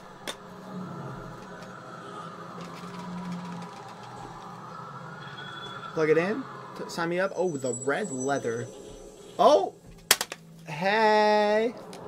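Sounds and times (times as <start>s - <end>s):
sustained high tone: 0.0s - 9.8s
electronic drone with low hum: 0.0s - 12.0s.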